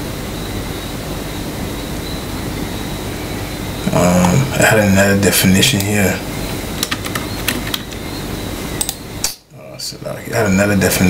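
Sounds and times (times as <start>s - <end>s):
even hiss: 0.0s - 11.0s
low hum: 0.0s - 11.0s.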